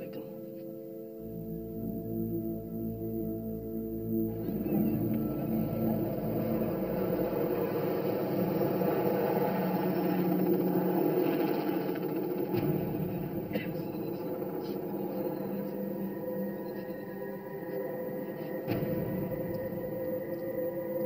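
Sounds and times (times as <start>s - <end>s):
faint sustained drone: 0.0s - 21.0s.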